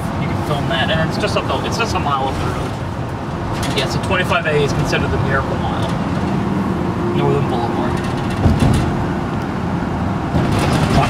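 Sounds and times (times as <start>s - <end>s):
car road noise rumble: 0.0s - 11.0s
car bump: 7.9s - 9.4s, 10.3s - 11.0s.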